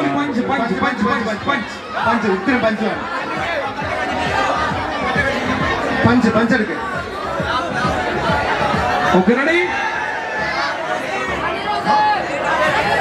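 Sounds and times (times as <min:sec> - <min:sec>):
crowd chatter: 0:00.0 - 0:13.0
music: 0:00.0 - 0:13.0.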